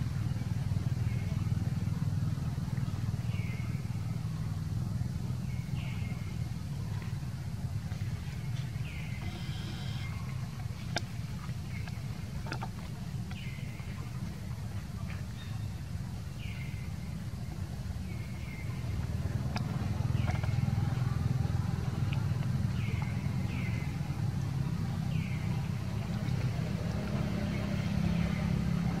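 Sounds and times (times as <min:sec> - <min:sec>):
outdoor ambience rumble: 0:00.0 - 0:29.0
high-pitched animal calls: 0:09.2 - 0:10.3.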